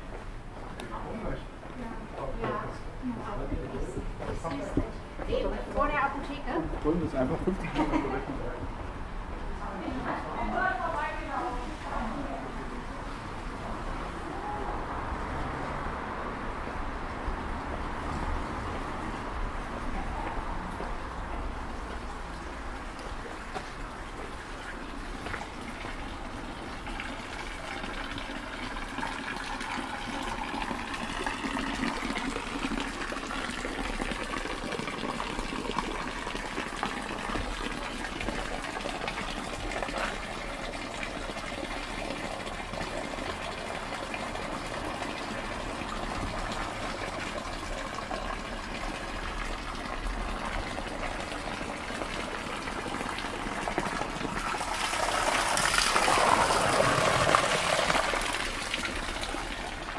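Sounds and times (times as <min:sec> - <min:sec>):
fountain water splashing into basin: 0:09.9 - 0:59.9.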